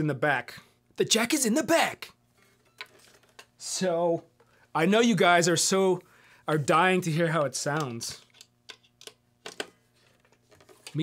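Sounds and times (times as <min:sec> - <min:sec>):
electric guitar handling clicks: 0:07.7 - 0:09.7.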